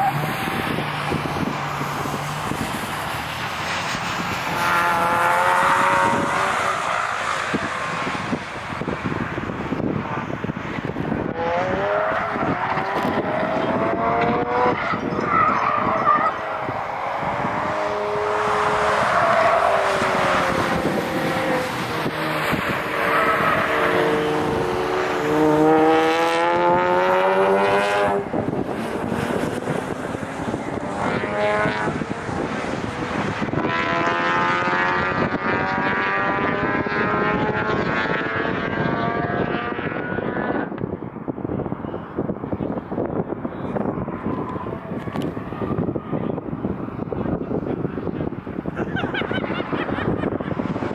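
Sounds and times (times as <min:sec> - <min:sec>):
race car engines revving: 0:00.0 - 0:50.9.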